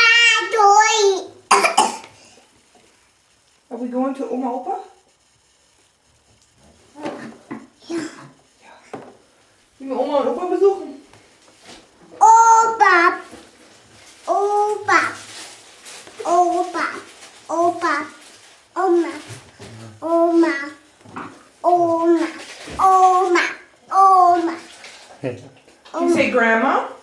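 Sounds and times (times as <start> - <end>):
toddler calling out: 12.2 - 13.2, 21.6 - 24.7.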